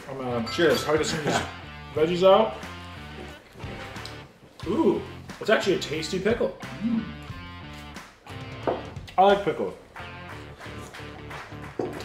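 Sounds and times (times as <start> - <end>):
guitar background music: 0.0 - 12.0.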